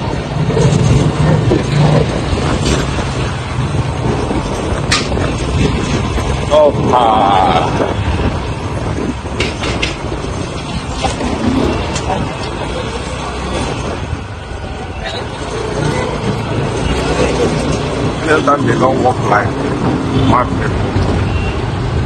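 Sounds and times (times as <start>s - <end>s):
passing voices: 0.0s - 21.2s
road traffic rumble: 0.0s - 22.0s.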